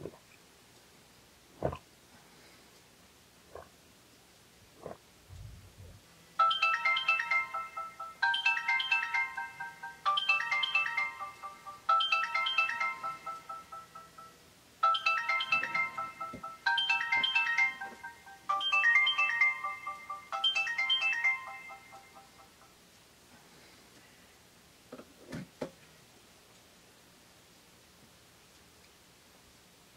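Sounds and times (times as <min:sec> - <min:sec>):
alarm ringtone bell-like melody: 0:06.4 - 0:22.8.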